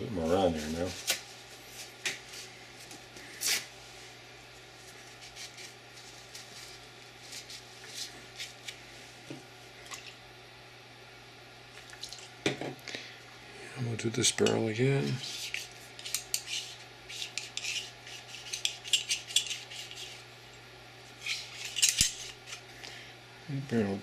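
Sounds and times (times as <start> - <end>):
steady low hum: 0.0 - 24.0
cleaning rod rubbing and clicking: 15.1 - 20.2, 21.2 - 22.6.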